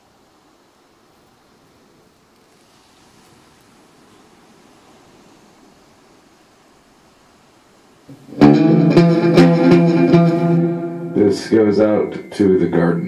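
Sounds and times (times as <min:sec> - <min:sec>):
faint hiss: 0:00.0 - 0:13.0
electric guitar chord ringing: 0:08.1 - 0:13.0.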